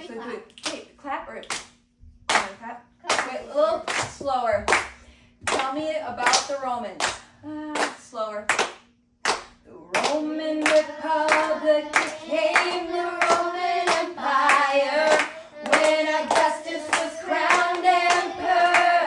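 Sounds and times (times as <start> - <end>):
hands clapping a steady beat: 2.3 - 19.0
adult and children singing: 10.0 - 19.0.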